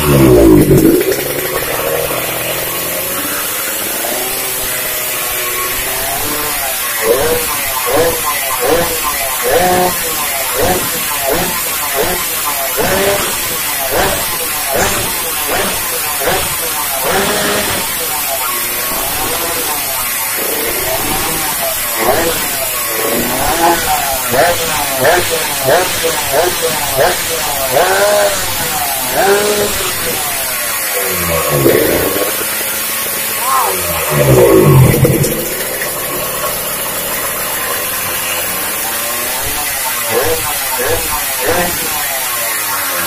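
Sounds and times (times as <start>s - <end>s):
two-stroke motorcycle engine revving: 0.0s - 43.0s.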